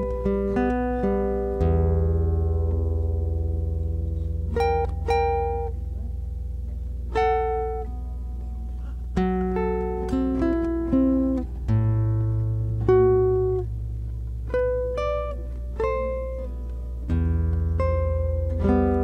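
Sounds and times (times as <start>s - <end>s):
classical guitar melody: 0.0s - 19.0s.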